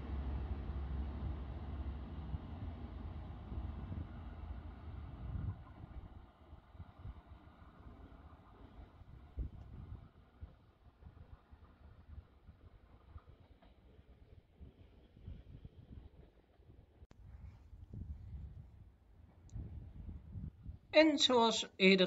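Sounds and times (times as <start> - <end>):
diesel train engine rumble: 0.0 - 10.3
wind buffeting microphone: 0.0 - 11.4, 17.1 - 20.9.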